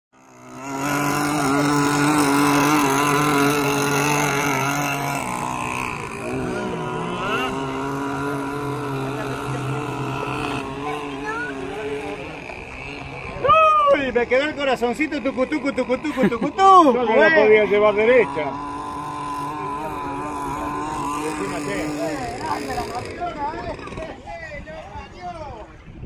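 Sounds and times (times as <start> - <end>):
model boat engines buzzing: 0.1 - 25.9.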